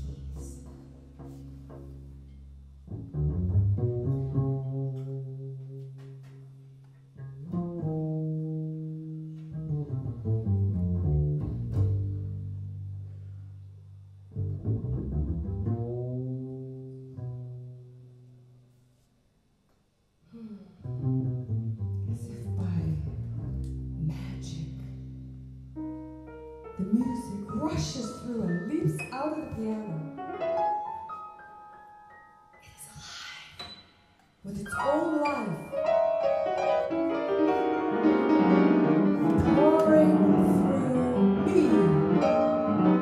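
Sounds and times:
double bass bowed and plucked: 0.0s - 18.6s, 20.8s - 30.8s, 34.5s - 43.0s.

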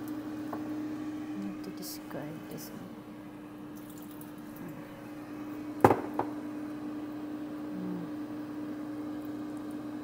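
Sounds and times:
kitchen appliance humming: 0.0s - 10.0s
sharp knock: 5.8s - 6.3s.

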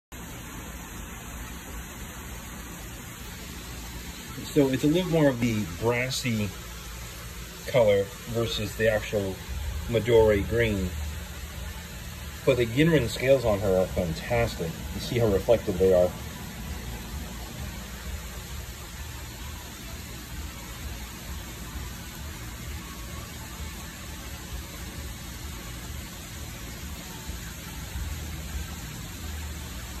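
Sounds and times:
moving water hiss: 0.2s - 30.0s
steady low rumble: 1.0s - 19.8s.

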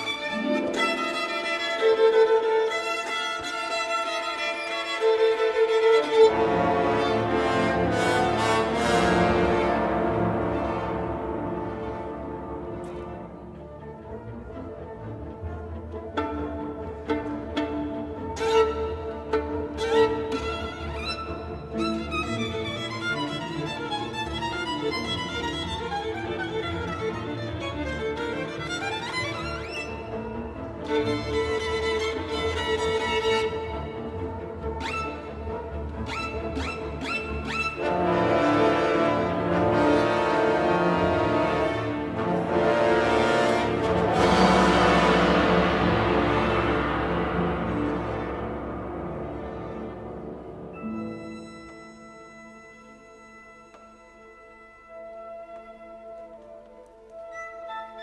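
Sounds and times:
orchestra playing: 0.0s - 58.0s
solo violin: 0.0s - 58.0s.

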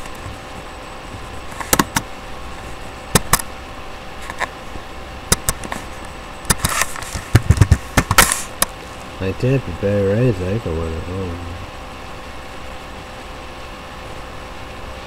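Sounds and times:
faint steady hum: 0.0s - 15.0s
sharp knocks and clicks: 1.6s - 2.1s, 3.1s - 3.4s, 6.5s - 8.7s.

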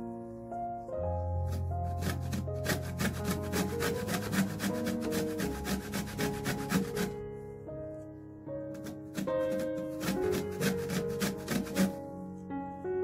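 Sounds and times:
soft background music: 0.0s - 13.0s
lemon rasping on metal grater: 1.5s - 7.2s, 8.7s - 12.0s.

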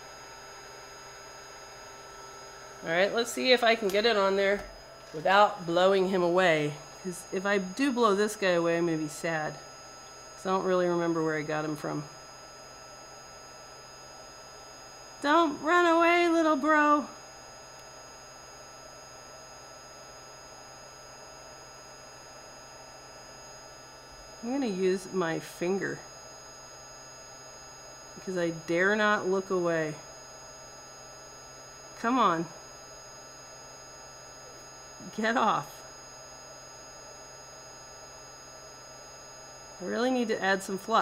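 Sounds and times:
faint electrical hum: 0.0s - 41.0s.

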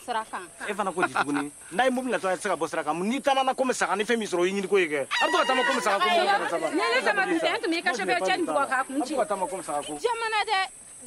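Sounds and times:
people talking: 5.2s - 10.7s.

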